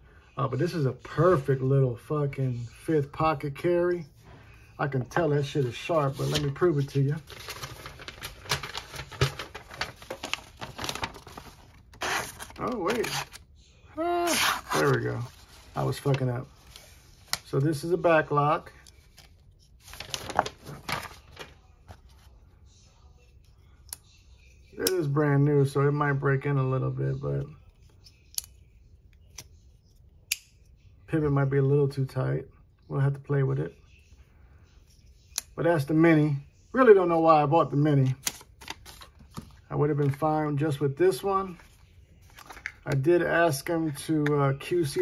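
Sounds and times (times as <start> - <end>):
paper rustling and crinkling: 5.0 - 13.4, 14.2 - 17.8, 18.8 - 22.4, 38.0 - 40.2, 41.4 - 43.0.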